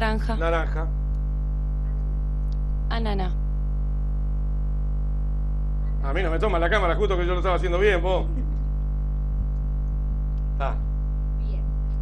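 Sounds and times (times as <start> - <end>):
loud electrical mains hum: 0.0 - 12.0.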